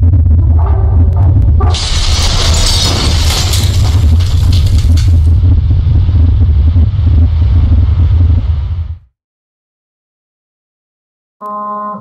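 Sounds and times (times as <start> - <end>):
deep steady rumble: 0.0 - 9.1
stone crumbling and debris scattering: 1.7 - 5.5.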